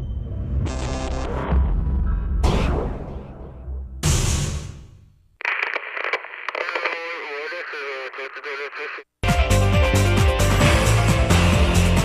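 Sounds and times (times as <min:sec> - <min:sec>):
voice through radio speaker: 0:05.4 - 0:09.1.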